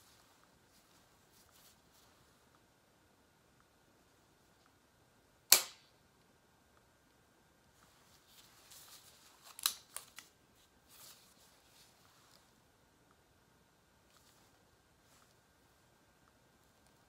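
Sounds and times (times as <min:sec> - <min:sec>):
soft rustling: 0:00.0 - 0:02.8, 0:07.7 - 0:13.2, 0:13.9 - 0:17.0.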